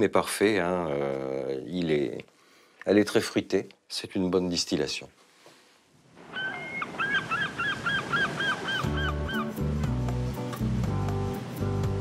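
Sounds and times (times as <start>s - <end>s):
gull calling: 6.2s - 9.6s
music: 8.7s - 12.0s.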